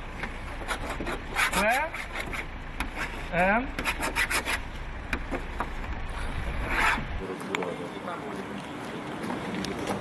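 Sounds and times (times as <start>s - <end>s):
hard object scraping metal: 0.5s - 4.7s, 6.1s - 7.2s.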